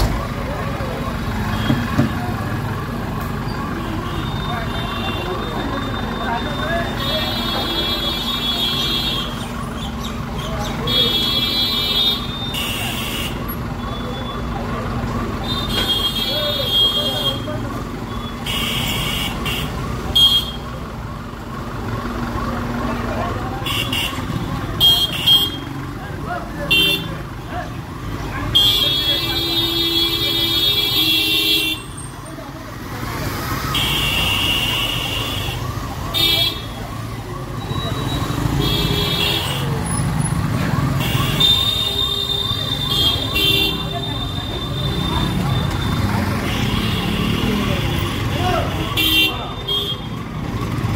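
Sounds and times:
street noise: 0.0 - 50.9
voices: 0.0 - 50.9
vehicle horns honking: 3.5 - 9.4, 10.8 - 14.2, 15.4 - 17.6, 18.2 - 20.8, 23.6 - 25.8, 26.6 - 27.3, 28.5 - 32.1, 33.7 - 36.9, 37.6 - 50.3.

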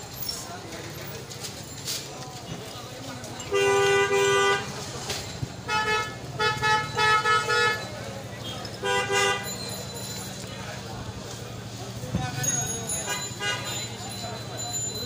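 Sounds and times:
traffic din: 0.0 - 15.0
vehicle horns honking: 3.4 - 4.9, 5.6 - 9.7, 12.9 - 14.0.

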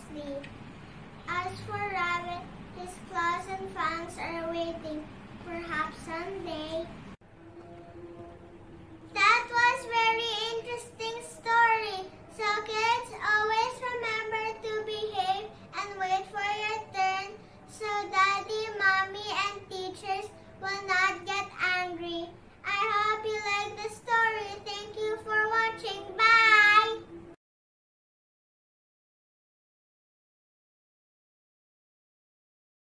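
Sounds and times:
girl singing: 0.0 - 0.5, 1.3 - 8.3, 9.0 - 27.2.

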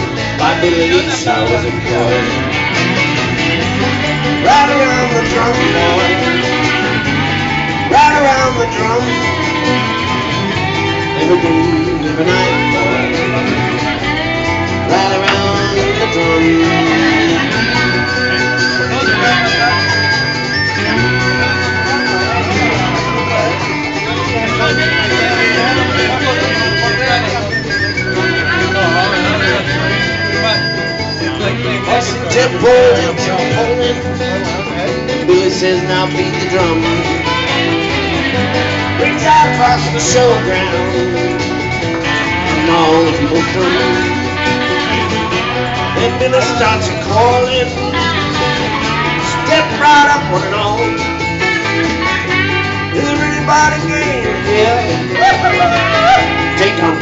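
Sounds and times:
guitars strumming: 0.0 - 57.0
steady bass: 0.0 - 57.0
person singing: 0.3 - 2.8, 3.6 - 23.6, 31.4 - 51.1, 52.8 - 57.0.

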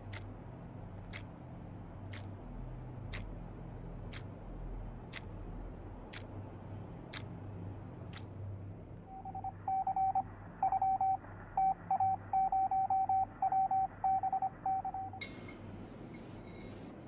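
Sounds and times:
low steady hum: 0.0 - 17.0
high-pitched electronic beep pulses: 9.1 - 15.2.

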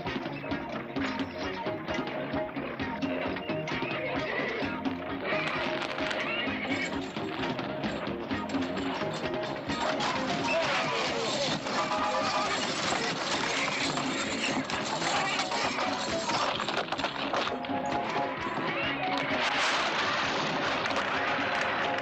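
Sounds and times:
film soundtrack music: 0.0 - 22.0
horses galloping: 0.0 - 22.0
horses whinnying: 2.6 - 22.0
explosions: 19.3 - 22.0.

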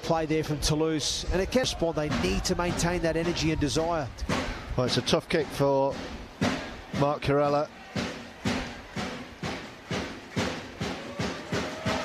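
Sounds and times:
spectators beating a rhythm: 1.4 - 12.0.

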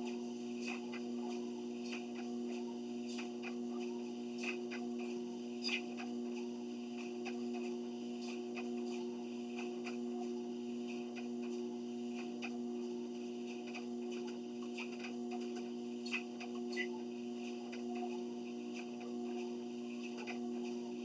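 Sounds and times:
faint irregular ticks: 0.0 - 21.0
treadmill motor hum: 0.0 - 21.0.

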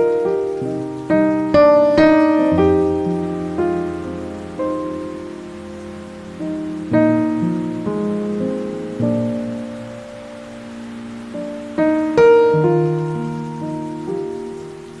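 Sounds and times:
gentle piano chords: 0.0 - 15.0
rain hiss: 0.0 - 15.0.

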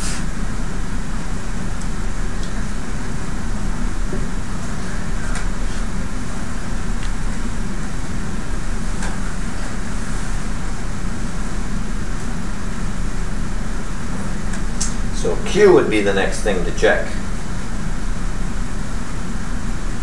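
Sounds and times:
room tone hum and hiss: 0.0 - 20.0.

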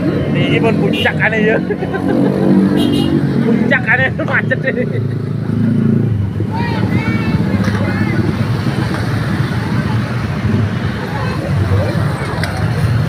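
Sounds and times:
motorcycle engines in traffic: 0.0 - 13.0
people calling out: 6.4 - 10.2.

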